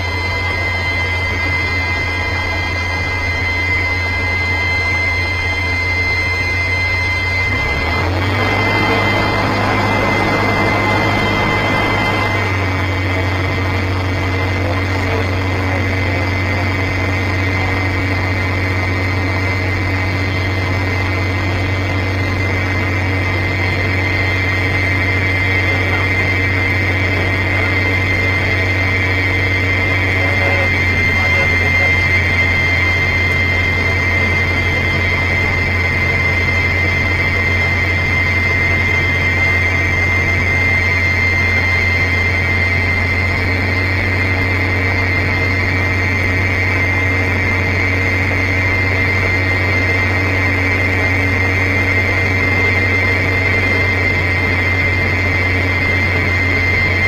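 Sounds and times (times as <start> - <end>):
piston engine and propeller drone: 0.0 - 57.0.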